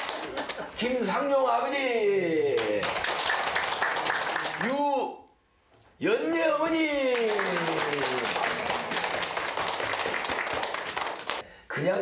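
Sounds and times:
people applauding: 0.0 - 0.6, 2.5 - 4.8, 7.0 - 11.4.

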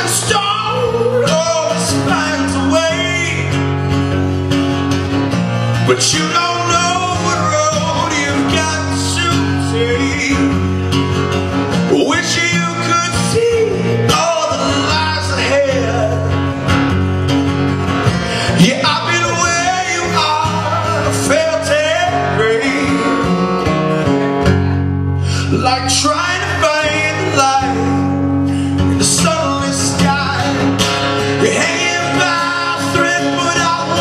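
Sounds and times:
man singing into a microphone: 0.0 - 3.9, 5.7 - 16.8, 18.2 - 34.0
acoustic guitar strumming: 0.0 - 34.0.

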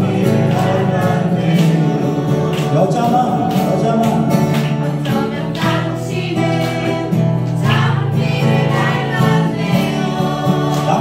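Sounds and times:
man singing a folk ballad: 0.0 - 4.5
strummed acoustic guitar: 0.0 - 11.0.

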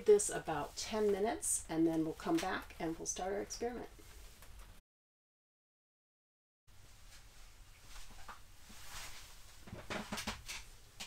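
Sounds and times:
faint steady hiss: 0.0 - 4.7, 6.7 - 11.0
rustling: 6.7 - 11.0.

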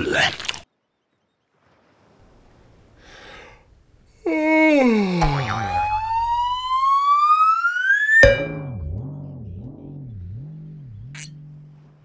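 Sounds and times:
low wobbling tone: 5.2 - 12.0
pitched tone sliding down: 5.2 - 12.0
rising whistle glide: 5.8 - 8.3.

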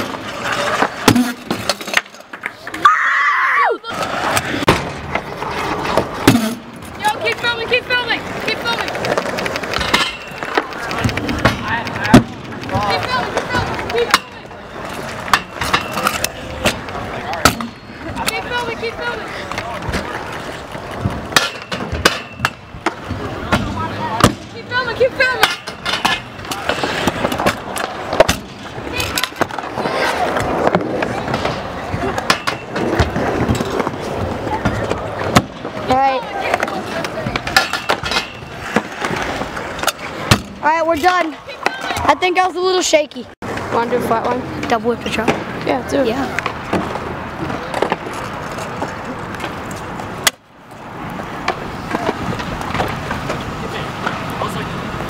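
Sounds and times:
scooter wheels rolling: 0.0 - 55.0
scooter clacks and bangs: 8.6 - 14.4, 20.9 - 24.5, 30.4 - 34.0, 36.5 - 40.6.

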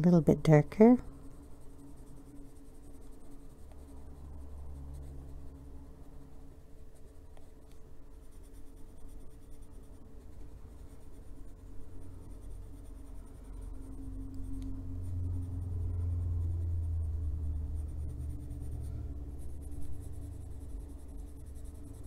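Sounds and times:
colored pencil scratching on paper: 0.0 - 22.0
low steady hum: 0.0 - 22.0.

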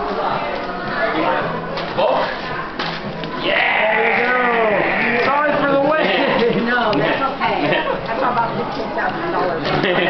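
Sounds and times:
background talk: 0.0 - 10.0.

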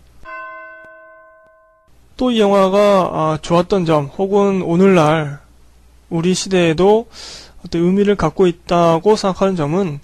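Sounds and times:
bell-like chime: 0.2 - 1.9.

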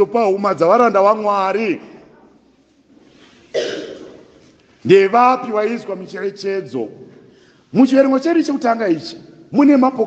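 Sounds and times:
faint room noise: 0.0 - 10.0
man coughing: 3.5 - 4.4.

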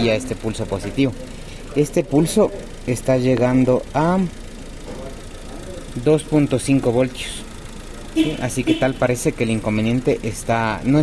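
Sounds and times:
car engine idling with misfire: 0.0 - 11.0.

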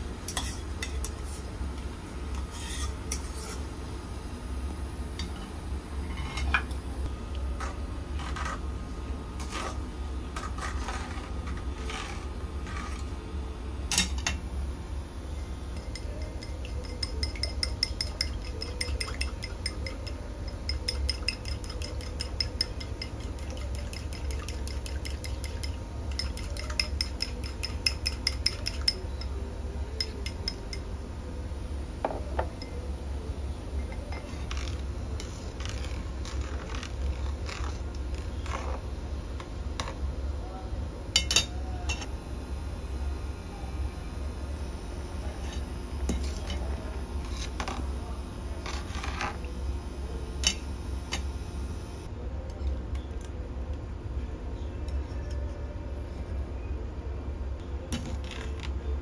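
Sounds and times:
low steady hum: 0.0 - 59.0
metal ladle scraping metal bowl: 2.5 - 3.7
chopsticks beating egg in bowl: 15.7 - 30.9.

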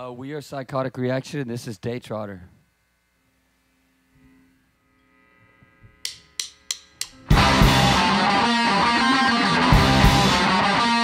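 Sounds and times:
drumstick count-in clicks: 6.0 - 7.2
rock band playing: 7.2 - 11.0.

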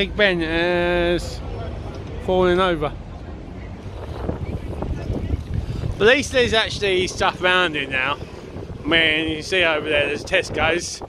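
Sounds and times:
wind buffeting microphone: 1.5 - 11.0.

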